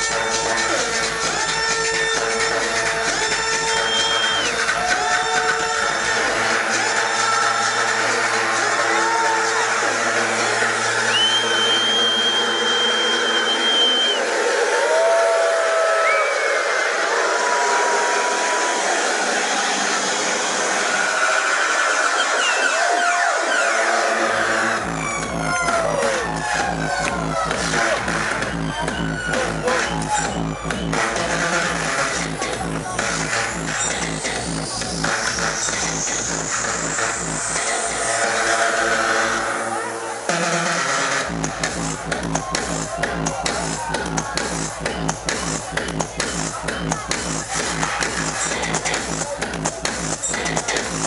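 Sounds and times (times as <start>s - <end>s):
electronic dance music: 0.0s - 51.0s.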